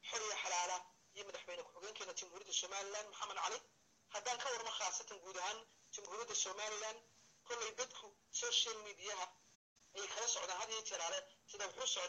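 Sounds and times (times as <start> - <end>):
man speaking over telephone: 0.0 - 12.0.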